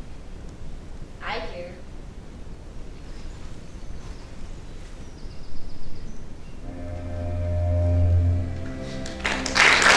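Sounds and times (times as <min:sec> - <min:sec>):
room hum and hiss: 0:00.0 - 0:09.9
sustained musical tones: 0:06.6 - 0:09.9.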